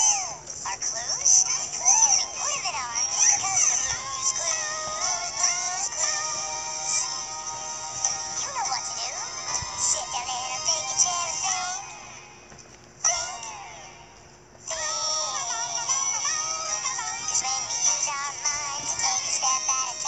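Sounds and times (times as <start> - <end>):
synthetic high-pitched singing voice: 0.0 - 7.3, 8.1 - 12.0, 13.0 - 13.9, 14.7 - 20.0.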